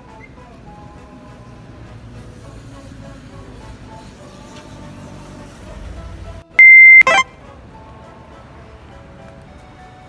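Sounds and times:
quiet background music: 0.0s - 6.5s, 7.1s - 10.0s
high-pitched electronic beep: 6.6s - 7.2s.

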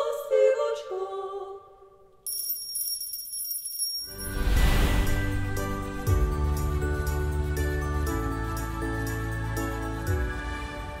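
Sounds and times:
high bell-like ringing: 2.3s - 8.6s
choir chord: 4.6s - 11.0s.

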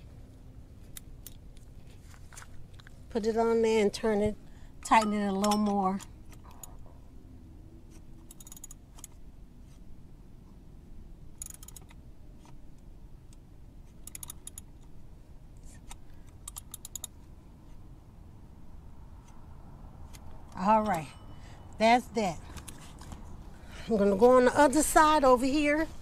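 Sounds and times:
socket ratchet clicking: 8.2s - 9.2s, 11.4s - 12.0s, 13.9s - 15.0s, 15.8s - 17.2s.

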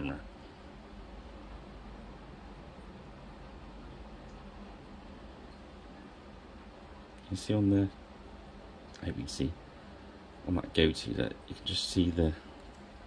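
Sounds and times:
faint low hum: 0.0s - 13.0s
low hiss: 0.0s - 13.0s.

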